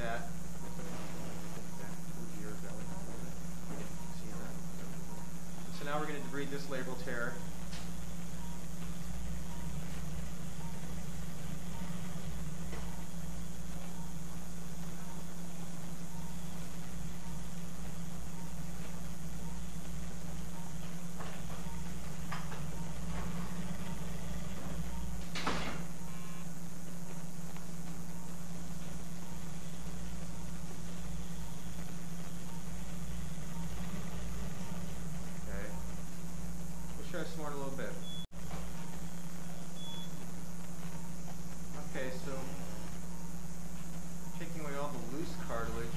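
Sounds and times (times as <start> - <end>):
low mechanical hum of shaver: 0.0 - 45.9.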